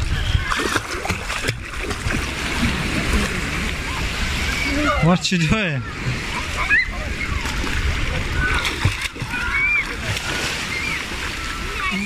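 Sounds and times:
children splashing in water: 0.0 - 12.0
children calling out: 5.9 - 12.0.

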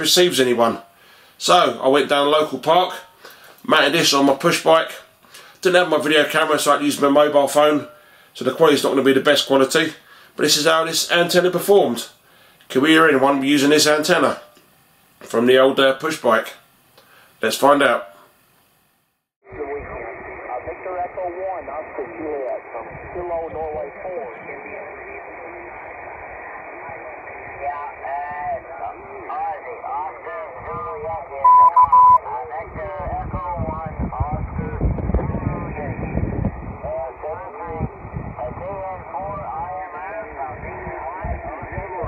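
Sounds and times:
low rumble on microphone: 19.5 - 42.0
muffled voice over radio speaker: 19.5 - 42.0
radio band hiss: 19.5 - 42.0
loud short beep: 31.4 - 32.2.

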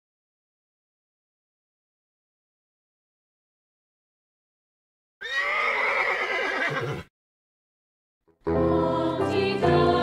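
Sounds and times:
horse whinnying: 5.2 - 7.1.

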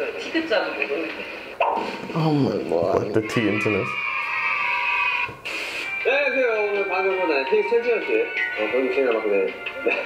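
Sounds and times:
brief high hiss: 5.4 - 6.0.

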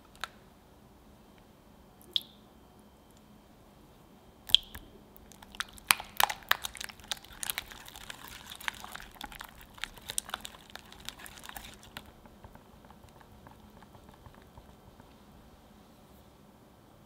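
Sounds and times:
whisk beating batter: 5.4 - 15.4
whisk tapping glass bowl: 5.6 - 15.2.

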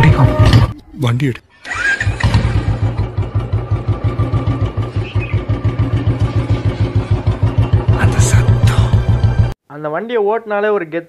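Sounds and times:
motorcycle engine thumping: 2.2 - 9.6.

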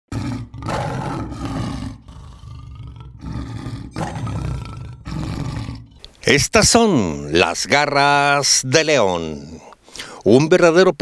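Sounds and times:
lion roaring and growling: 0.1 - 6.1.

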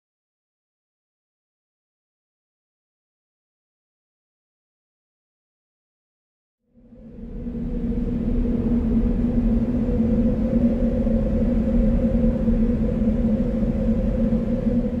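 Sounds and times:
ominous low music drone: 6.7 - 15.0
low rumble: 6.8 - 15.0.

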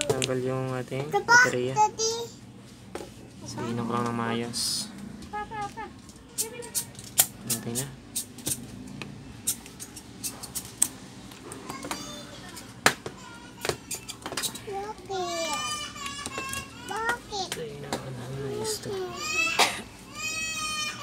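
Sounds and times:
children's voices in background: 11.4 - 21.0.

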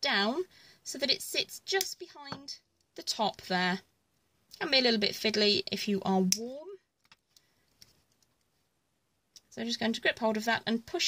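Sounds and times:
faint clicks of pliers and wire: 6.3 - 8.6.

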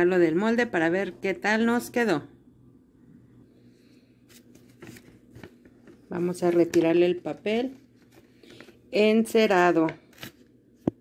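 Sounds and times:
paper rustling: 4.3 - 8.8, 9.8 - 10.5.

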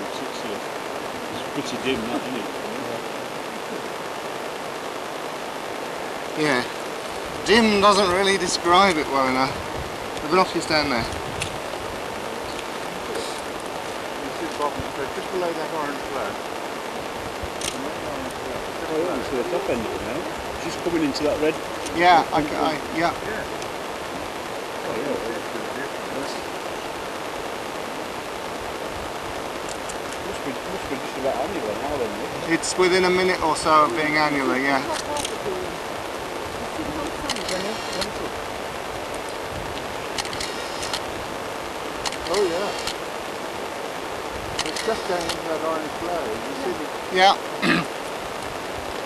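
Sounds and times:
faint talk of people: 0.0 - 4.2, 6.3 - 6.8, 12.0 - 23.6, 24.2 - 26.6, 29.8 - 38.5, 44.6 - 47.9
quiet voices: 0.0 - 4.2, 6.0 - 11.2, 12.0 - 26.6, 30.0 - 38.5, 42.2 - 43.0, 44.6 - 48.0
steady rushing noise: 0.0 - 49.0.

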